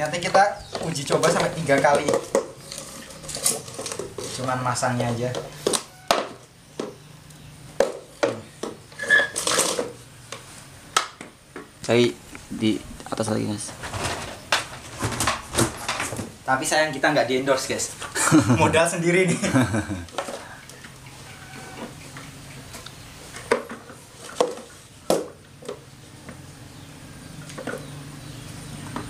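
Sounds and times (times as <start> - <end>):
plastic scraping rub: 0.2 - 4.6.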